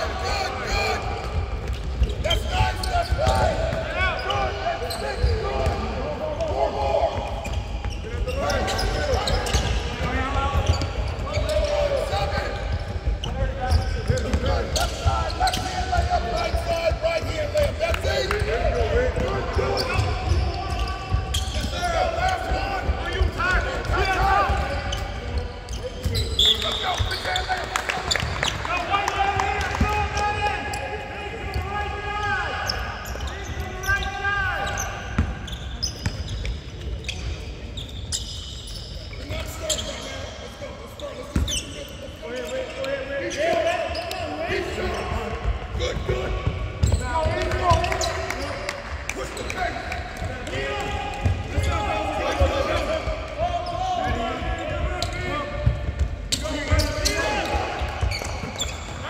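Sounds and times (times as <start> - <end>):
players shouting: 0.0 - 25.0, 49.1 - 58.7
basketballs bouncing on wooden court: 0.8 - 28.7, 43.5 - 59.0.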